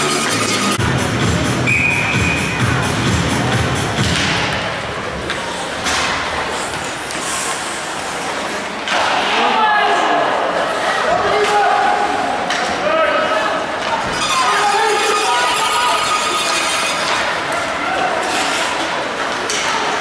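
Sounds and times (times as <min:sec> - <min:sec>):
music in echoing hall: 0:00.0 - 0:05.1.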